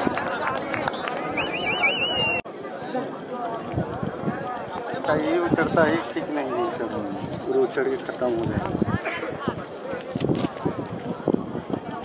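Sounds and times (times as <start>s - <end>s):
crowd chatter: 0.0s - 12.0s
warbling whistle blast: 1.4s - 2.4s.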